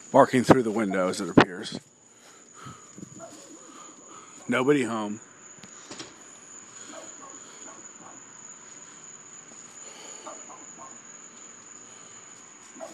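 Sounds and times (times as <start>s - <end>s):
high insect trill: 0.0s - 12.9s
muffled dog barking: 3.2s - 3.6s, 6.8s - 8.3s, 10.2s - 11.1s.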